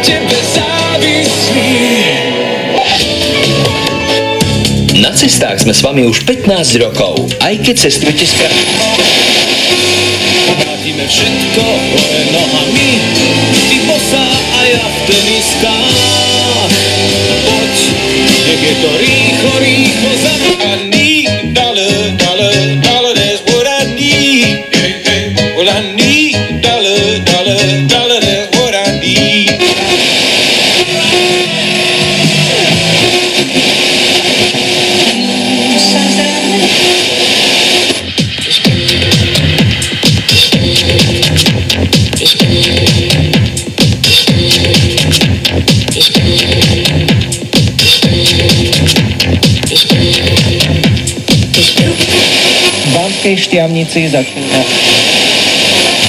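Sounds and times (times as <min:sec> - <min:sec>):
radio music through speakers: 0:00.0 - 0:56.0.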